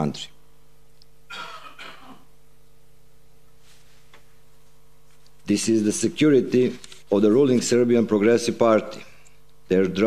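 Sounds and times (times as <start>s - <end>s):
faint sound system hum: 0.0s - 10.0s
person clearing throat: 1.3s - 2.3s.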